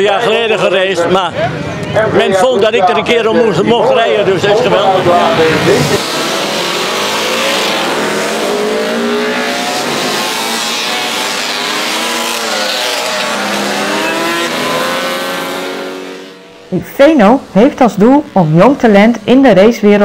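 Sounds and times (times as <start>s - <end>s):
racing motorcycles revving: 3.1s - 19.7s.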